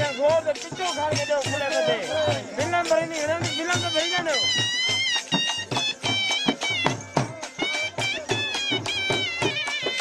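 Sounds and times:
drums beating fast rhythm: 0:00.0 - 0:10.0
reed wind instrument melody: 0:00.0 - 0:10.0.

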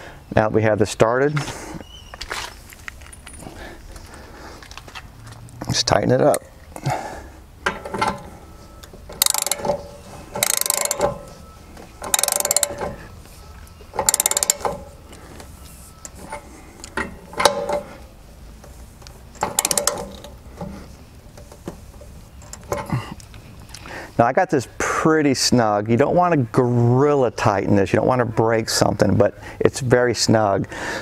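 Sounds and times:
ratchet wrench clicking: 0:08.8 - 0:11.3, 0:12.0 - 0:13.0, 0:13.9 - 0:15.2, 0:19.0 - 0:20.7.

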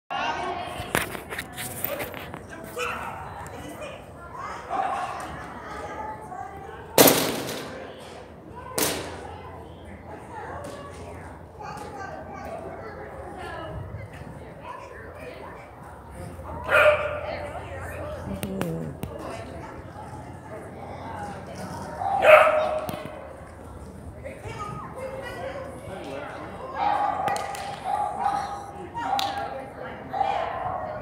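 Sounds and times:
people talking: 0:00.1 - 0:31.0
dog barking: 0:16.6 - 0:17.3, 0:22.0 - 0:22.9, 0:26.8 - 0:29.3, 0:30.1 - 0:31.0
small dog barking: 0:16.7 - 0:17.2, 0:22.0 - 0:22.9.

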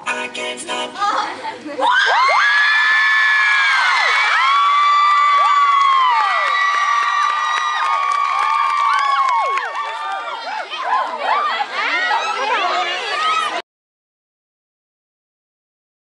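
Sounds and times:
girls screaming and cheering: 0:01.8 - 0:13.6.

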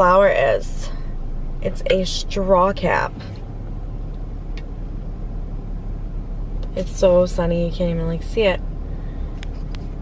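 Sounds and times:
car idling: 0:00.0 - 0:10.0.

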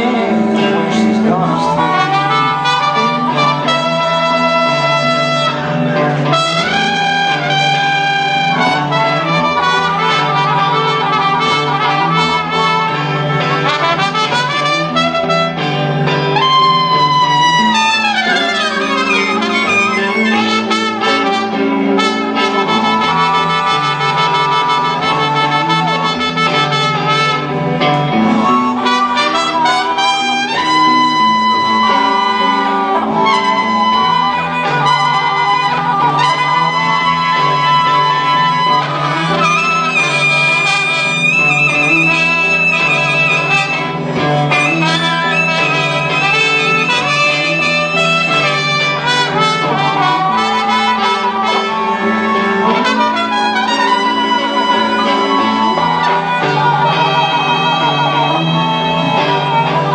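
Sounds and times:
blues band playing live: 0:00.0 - 0:59.9.

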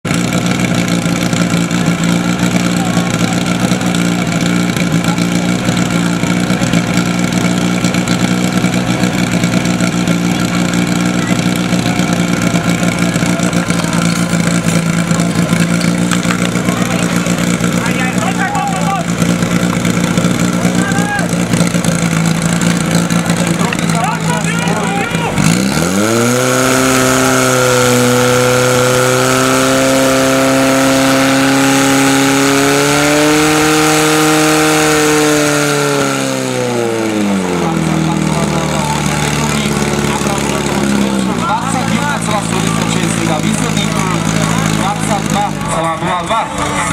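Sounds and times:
pump engine running at high revs: 0:00.0 - 0:46.9.

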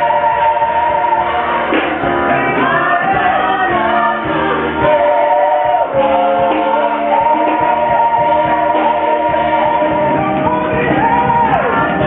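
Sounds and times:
backing singers sustained notes: 0:00.0 - 0:12.0.

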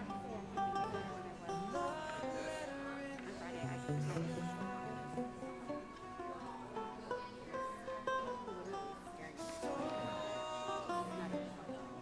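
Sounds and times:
plucked guitar: 0:00.0 - 0:12.0.

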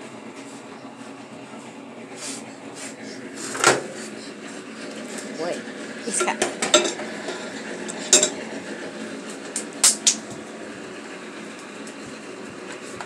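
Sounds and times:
kitchen room hum: 0:00.0 - 0:13.0.

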